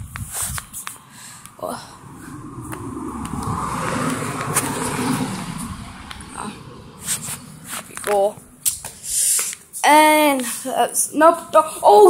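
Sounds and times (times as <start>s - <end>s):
rushing noise: 1.0s - 9.6s.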